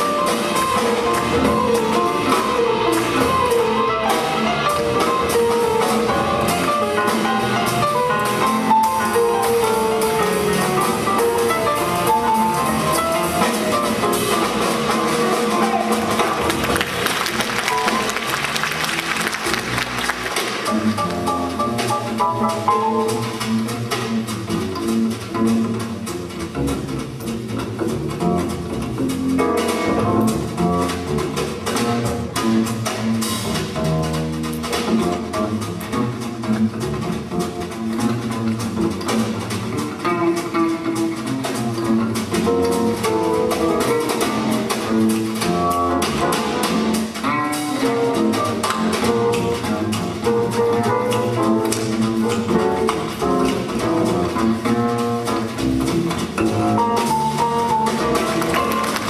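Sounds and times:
double bass: 0.0s - 59.0s
drums: 0.0s - 59.0s
jazz band playing: 0.0s - 59.0s.

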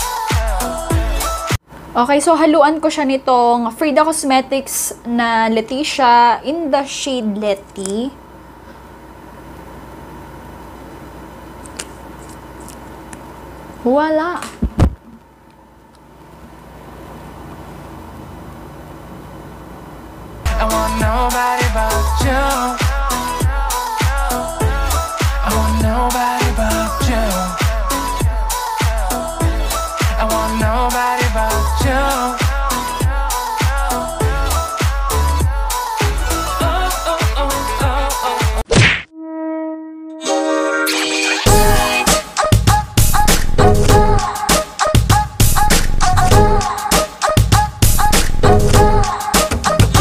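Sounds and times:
pop music with kick drum: 0.0s - 1.6s, 20.5s - 38.7s, 41.5s - 50.0s.

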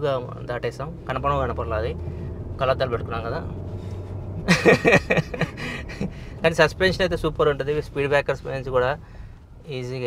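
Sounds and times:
car cabin drone: 0.0s - 10.0s
man talking: 2.6s - 3.5s, 5.8s - 9.0s, 9.6s - 10.0s.

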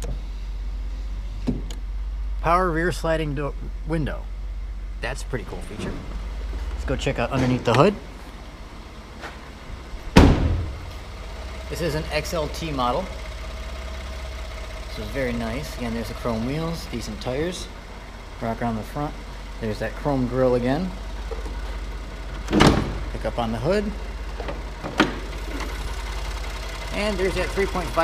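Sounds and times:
truck engine idling: 0.0s - 28.0s
hood opening clunk: 10.1s - 10.9s, 22.3s - 23.1s, 24.3s - 25.8s.

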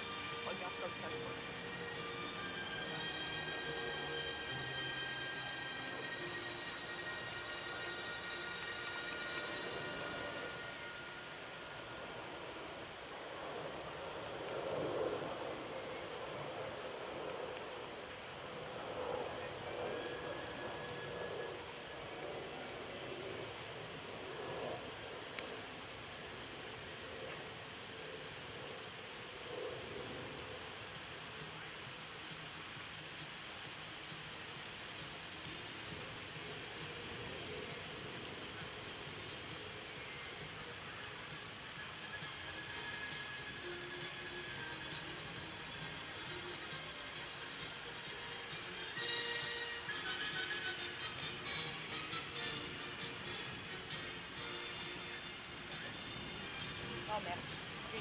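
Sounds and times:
outdoor background noise: 0.0s - 58.0s
music from loudspeakers: 41.3s - 57.4s.

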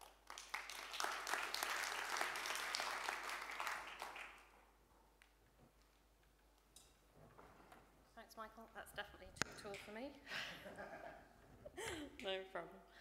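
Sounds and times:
audience applause: 0.0s - 4.5s.

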